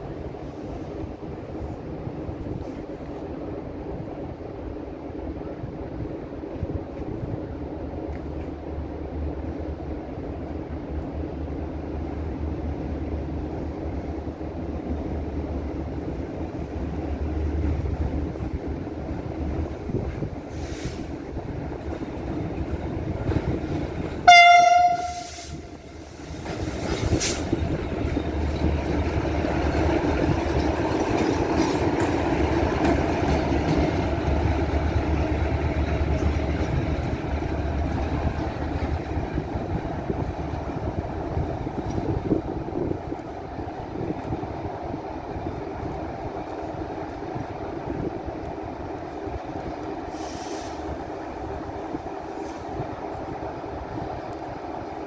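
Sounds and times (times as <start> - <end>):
train rumbling on rails: 0.0 - 55.0
locomotive horn blast: 24.2 - 25.9.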